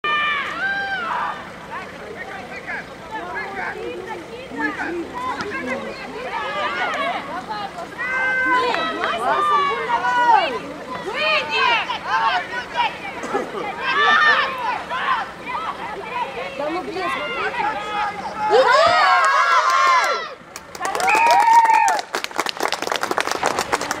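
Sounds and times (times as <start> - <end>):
women shouting calls: 0.0 - 1.7, 3.1 - 21.9
people clapping: 8.5 - 9.4, 19.1 - 24.0.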